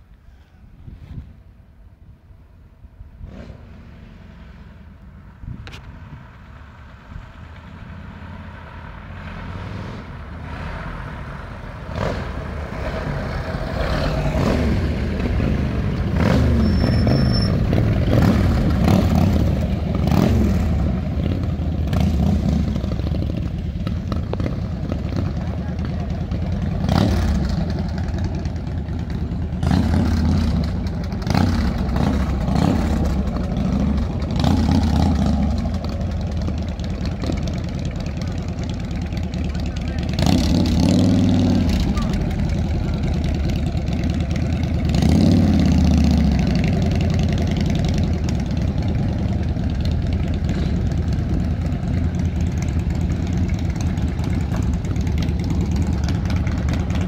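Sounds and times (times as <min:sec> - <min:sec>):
old car engine revving: 0:07.5 - 0:57.0
motorcycle engine revving: 0:07.8 - 0:57.0.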